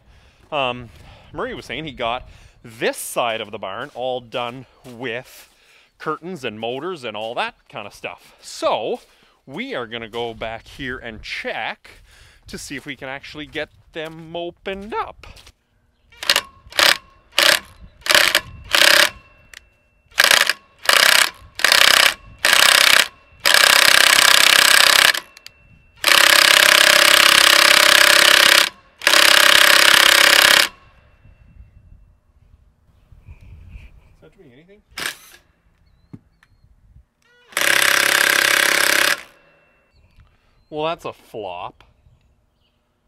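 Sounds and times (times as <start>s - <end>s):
cordless drill whining: 16.2s - 30.8s, 35.0s - 36.0s, 37.2s - 39.5s.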